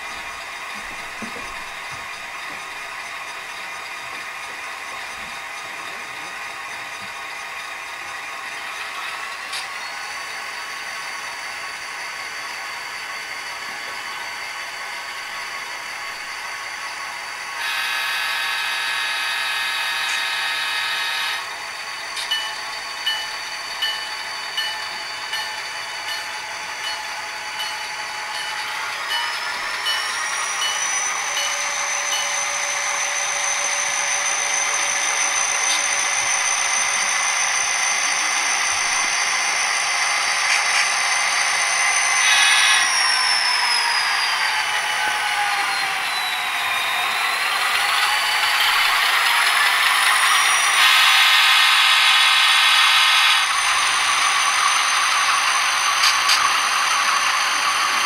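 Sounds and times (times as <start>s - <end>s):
diesel locomotive engine running: 0.0s - 58.0s
engine revving with rising whine: 29.5s - 58.0s.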